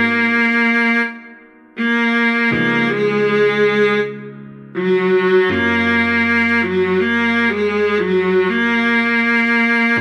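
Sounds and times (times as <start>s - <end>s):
viola playing a melody: 0.0s - 10.0s.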